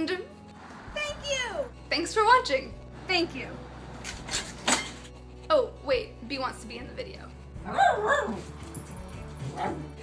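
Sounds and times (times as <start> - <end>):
small dog barking: 7.7 - 8.4.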